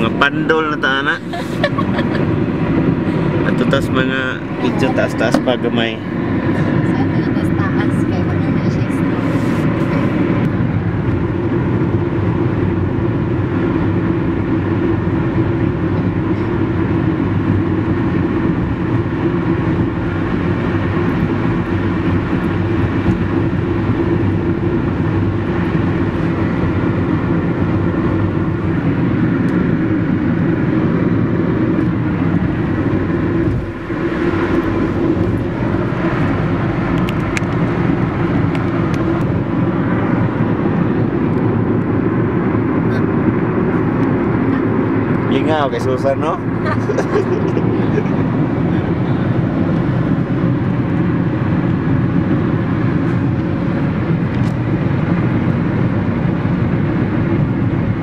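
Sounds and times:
road and engine rumble: 0:00.0 - 0:58.0.

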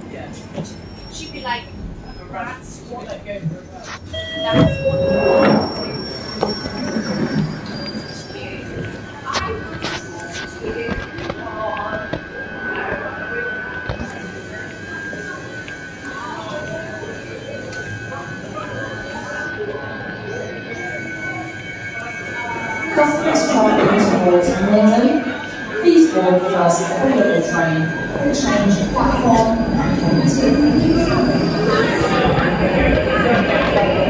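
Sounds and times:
murmuring voices: 0:00.0 - 0:34.0
steady high-pitched hum: 0:11.6 - 0:34.0.

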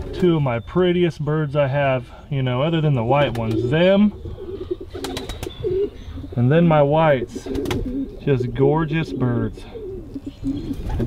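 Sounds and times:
pigeons cooing: 0:00.0 - 0:11.0.

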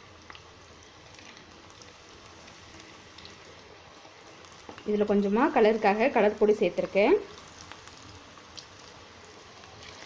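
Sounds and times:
fritters sizzling in hot oil: 0:00.0 - 0:10.0
small oil crackles: 0:00.0 - 0:10.0.

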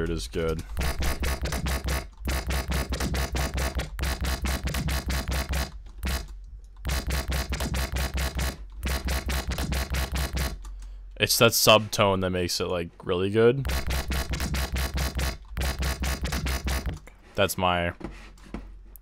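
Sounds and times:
stuttering synth bass loop: 0:00.8 - 0:06.2, 0:06.9 - 0:10.5, 0:13.7 - 0:17.0.

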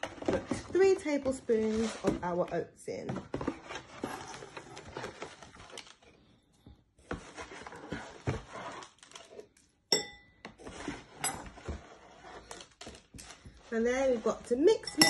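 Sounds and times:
spoon clinking on ceramic bowl: 0:09.9 - 0:10.3.

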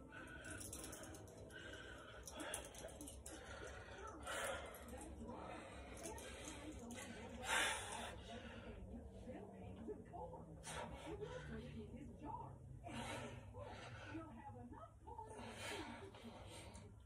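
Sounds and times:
man breathing hard: 0:00.0 - 0:06.6.

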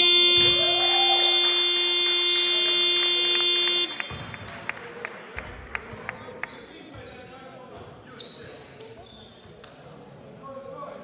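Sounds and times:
scoreboard buzzer blast: 0:00.0 - 0:04.1.

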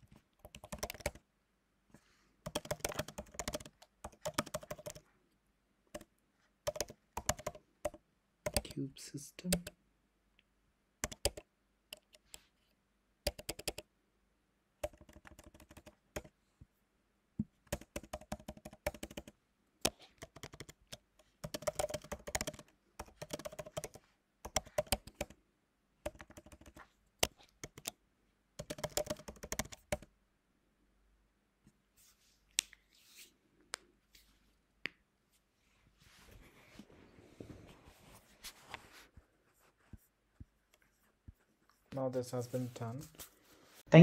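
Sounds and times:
computer keyboard typing: 0:00.3 - 0:01.2, 0:02.4 - 0:05.0, 0:05.9 - 0:08.8, 0:09.5 - 0:09.8, 0:11.0 - 0:12.4, 0:13.3 - 0:13.9, 0:14.8 - 0:16.3, 0:17.6 - 0:25.4, 0:26.0 - 0:28.0, 0:28.6 - 0:30.1.

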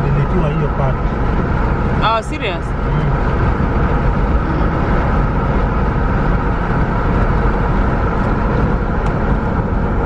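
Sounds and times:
people talking: 0:00.0 - 0:01.0, 0:02.0 - 0:03.2
car engine and road rumble: 0:00.0 - 0:10.0.

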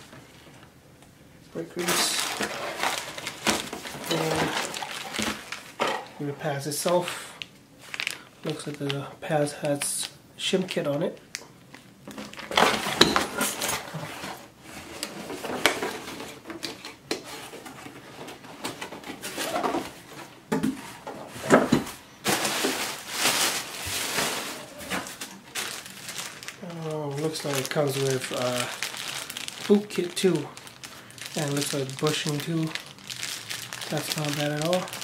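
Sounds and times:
packaging rustling and crinkling: 0:01.8 - 0:35.0.

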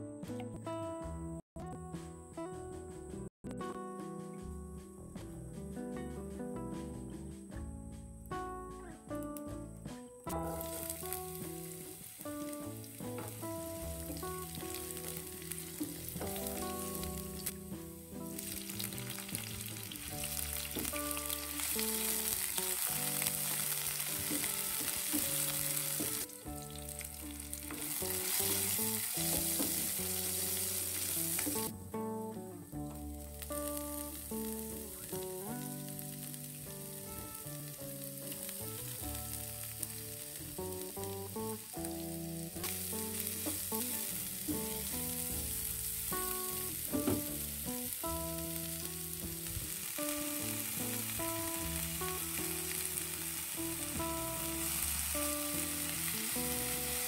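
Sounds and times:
background music: 0:00.0 - 0:57.0
oil sizzling in a frying pan: 0:10.3 - 0:31.7, 0:33.0 - 0:57.0.

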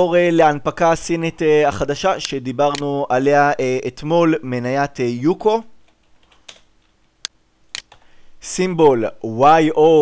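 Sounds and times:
keyboard keys tapped: 0:05.9 - 0:07.0.

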